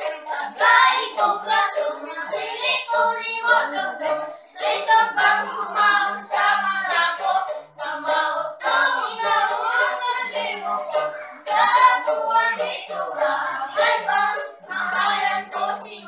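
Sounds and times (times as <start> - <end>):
child singing: 0.0 - 16.0
children's voices: 0.0 - 16.0
small guitar strumming: 0.0 - 16.0.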